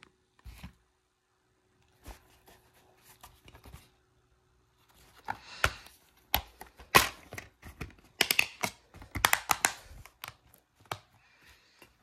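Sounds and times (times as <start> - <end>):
plastic case clicks and snaps: 5.6 - 11.1.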